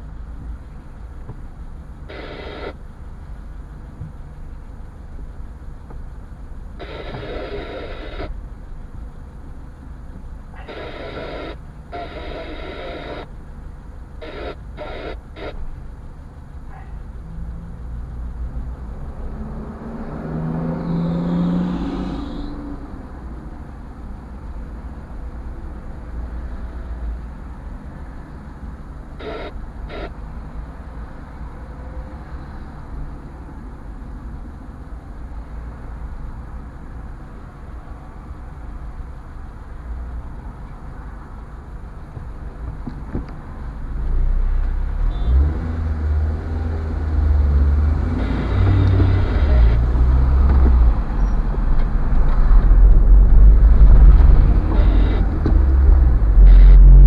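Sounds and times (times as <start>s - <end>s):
car idling rumble: 0.0s - 17.2s
short bursts of noise: 6.8s - 8.4s, 10.6s - 13.3s, 48.0s - 50.2s, 53.7s - 57.0s.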